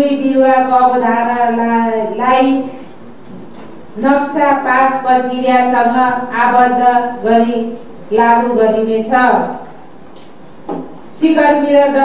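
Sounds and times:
woman reading aloud: 0.0 - 2.8, 4.0 - 9.6, 11.1 - 12.0.

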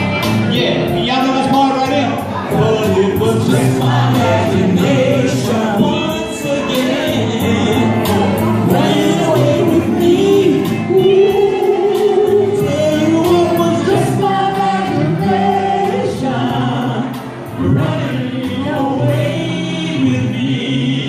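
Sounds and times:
instrumental backing with beat: 0.0 - 19.8
male vocal group singing: 0.5 - 21.0.

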